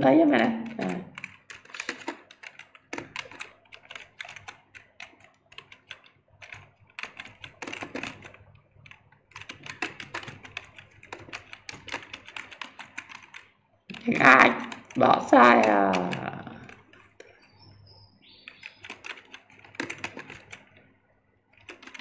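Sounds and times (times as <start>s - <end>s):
typing on computer keyboard: 0.4s - 20.9s, 21.5s - 22.0s.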